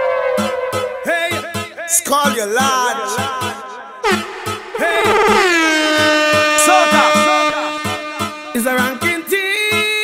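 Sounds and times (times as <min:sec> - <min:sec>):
air horn effect blast: 0:00.0 - 0:01.1, 0:04.0 - 0:09.6
dance music: 0:00.8 - 0:10.0.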